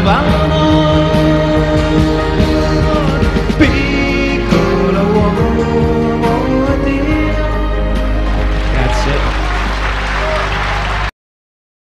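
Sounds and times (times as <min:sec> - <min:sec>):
song accompaniment: 0:00.0 - 0:11.1
audience applauding: 0:08.2 - 0:11.2.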